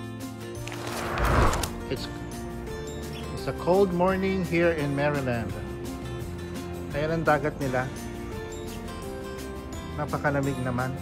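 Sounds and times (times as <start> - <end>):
rushing whoosh: 0.7 - 1.9
background music with held notes: 1.7 - 11.0.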